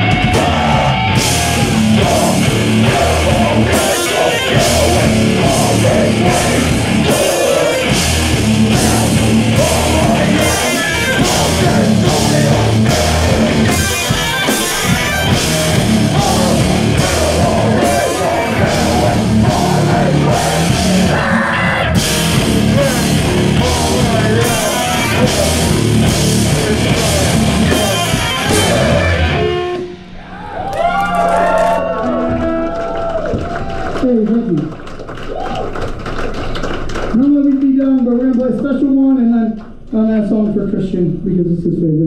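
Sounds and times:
metal band playing live: 0:00.0 - 0:32.8
guitar feedback ringing: 0:00.0 - 0:33.2.

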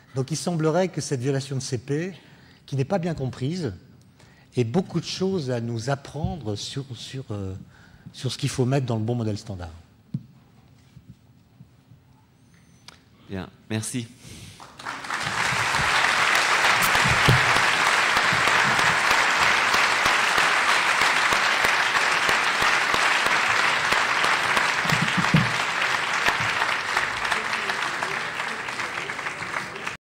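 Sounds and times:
audience applauding: 0:14.6 - 0:30.0.

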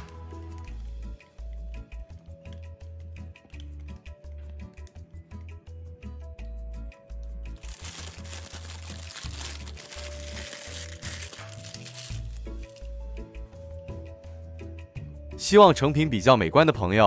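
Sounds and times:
plastic piping bag crinkling: 0:07.5 - 0:12.9.

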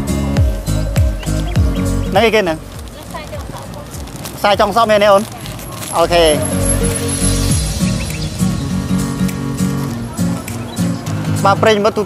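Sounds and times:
background music: 0:00.0 - 0:12.0
person's voice: 0:05.9 - 0:07.1.

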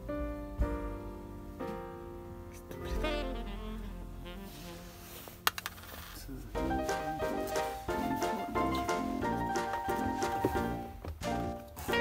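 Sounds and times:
background music: 0:00.0 - 0:05.8, 0:06.4 - 0:12.0.

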